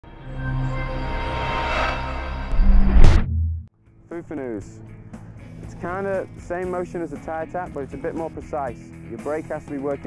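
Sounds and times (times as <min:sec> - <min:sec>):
deep boom with sweep: 0:02.5 - 0:03.7.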